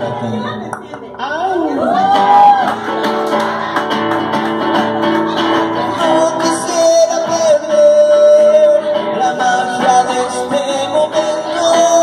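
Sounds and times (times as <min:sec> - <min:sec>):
acoustic guitar playing: 0:00.0 - 0:12.0
man singing: 0:05.4 - 0:12.0.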